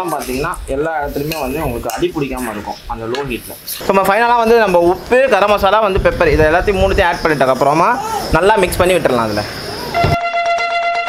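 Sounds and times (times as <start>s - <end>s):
person talking: 0.0s - 9.9s.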